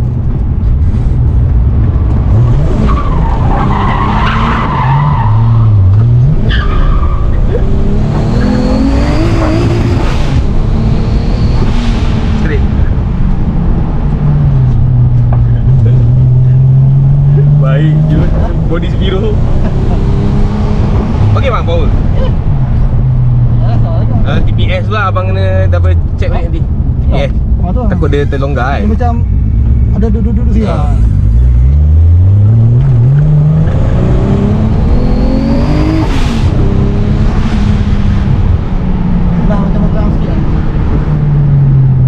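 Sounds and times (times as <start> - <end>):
car engine accelerating: 0.0 - 42.0
road noise: 0.0 - 42.0.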